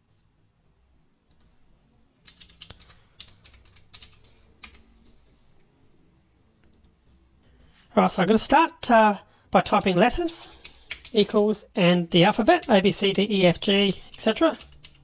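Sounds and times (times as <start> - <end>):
computer keyboard typing: 2.2 - 4.9, 9.6 - 11.6, 12.2 - 15.0.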